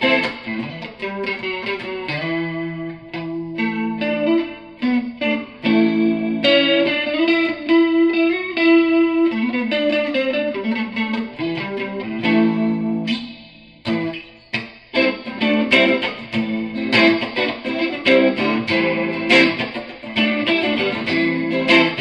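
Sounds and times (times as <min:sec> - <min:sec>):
electric guitar with rotating-speaker effect: 0:00.0 - 0:22.0.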